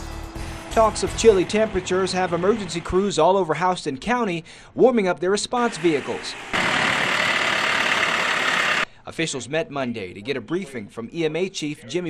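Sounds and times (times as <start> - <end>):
truck engine running: 0.0 - 3.2, 5.8 - 8.8.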